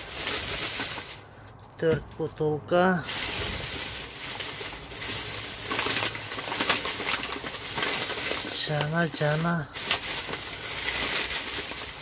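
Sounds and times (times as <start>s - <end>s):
plastic bags rustling and crinkling: 0.0s - 12.0s.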